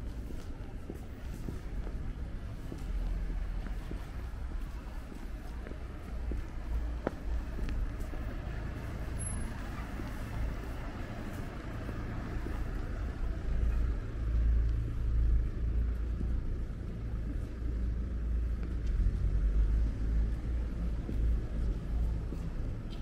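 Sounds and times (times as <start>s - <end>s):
passing car traffic rumble: 1.1s - 23.0s.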